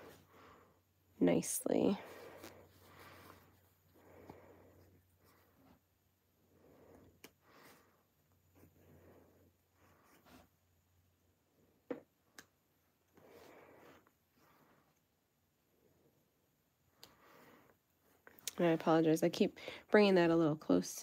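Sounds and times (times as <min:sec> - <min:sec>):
soft fabric rustling: 0:01.3 - 0:06.0.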